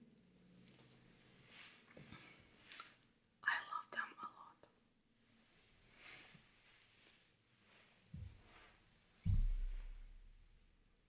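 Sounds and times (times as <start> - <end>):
soft rustles: 0.5 - 3.1, 5.2 - 10.5
woman whispering: 3.4 - 4.8.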